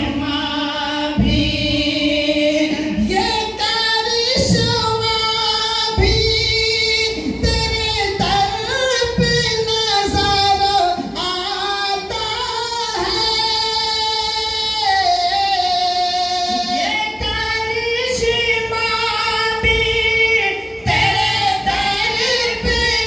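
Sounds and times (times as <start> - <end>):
man singing into a microphone: 0.0 - 23.0.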